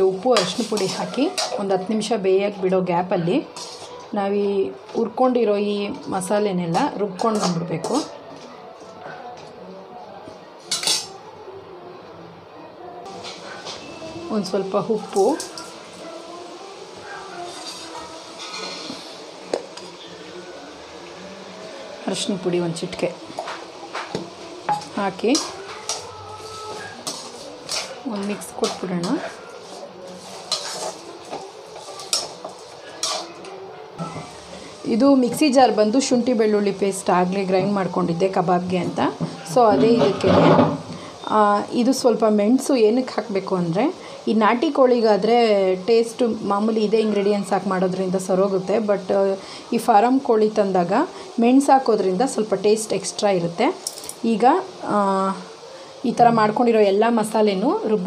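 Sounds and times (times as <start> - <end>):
metal spoon scraping a pan: 0.1 - 1.8, 3.5 - 4.0, 6.7 - 8.1, 10.7 - 11.1, 17.3 - 19.3, 24.7 - 33.5, 39.2 - 41.0.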